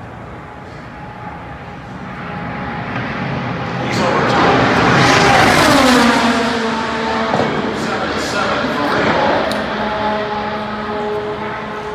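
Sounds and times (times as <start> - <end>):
race car passing at speed: 0.3 - 11.9.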